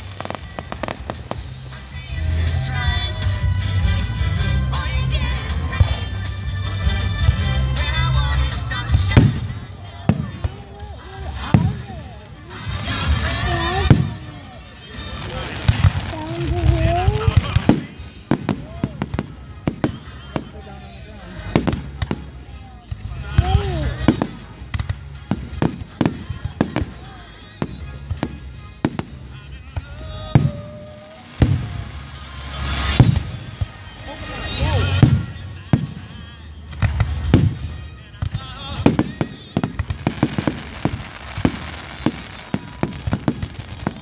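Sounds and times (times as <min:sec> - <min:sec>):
fireworks bursting: 0:00.0 - 0:44.0.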